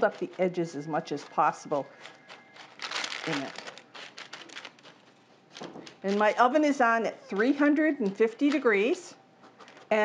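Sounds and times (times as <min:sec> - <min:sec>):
dry beans clicking and rattling: 0:00.0 - 0:10.0.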